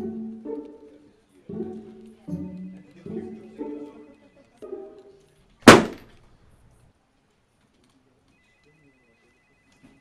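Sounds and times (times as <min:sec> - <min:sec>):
portfolio slapped onto wooden table: 0:05.7 - 0:06.0.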